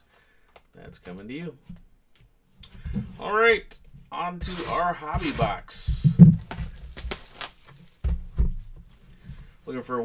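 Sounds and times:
cards handling noise: 0:06.0 - 0:08.2.

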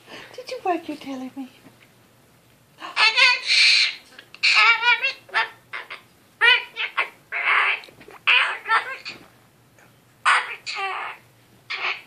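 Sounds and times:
cockatoo chattering: 0:02.8 - 0:09.2, 0:10.2 - 0:12.0.

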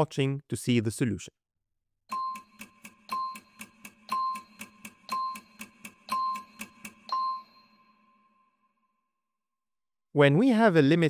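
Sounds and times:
quick timer ticks: 0:02.1 - 0:07.8.

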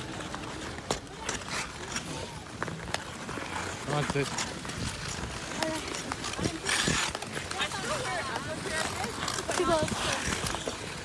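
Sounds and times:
ice skates scraping on ice: 0:00.0 - 0:11.0
skaters' voices: 0:00.0 - 0:11.0.

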